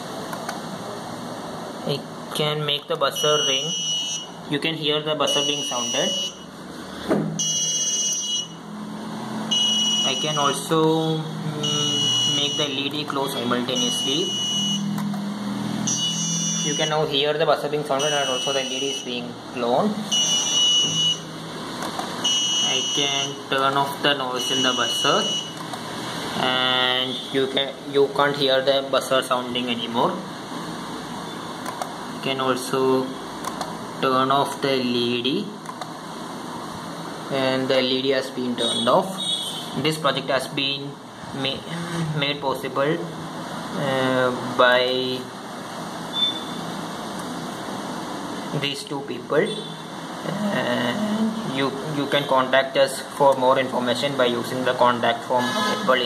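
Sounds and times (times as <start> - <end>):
buzzer beeping high-pitched tone: 3.2 - 4.4, 5.3 - 6.5, 7.4 - 8.6, 9.5 - 10.6, 11.6 - 12.8, 13.7 - 14.9, 15.8 - 17.1, 18.0 - 19.2, 20.1 - 21.3, 22.2 - 23.4, 24.4 - 25.6, 27.1 - 27.4, 46.1 - 46.7.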